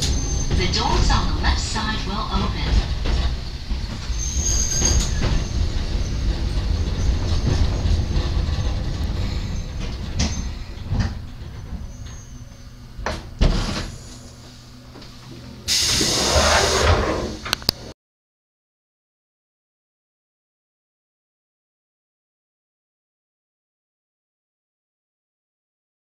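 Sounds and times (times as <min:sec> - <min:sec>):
train wheels clicking: 0:00.0 - 0:13.2
electric train rumbling: 0:00.0 - 0:17.9
compressed air hiss: 0:15.7 - 0:17.0.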